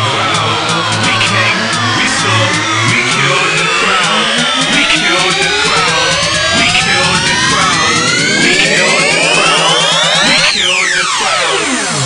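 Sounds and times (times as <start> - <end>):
low bass pulse: 0.0 - 11.0
rising synth sweeps: 0.0 - 12.0.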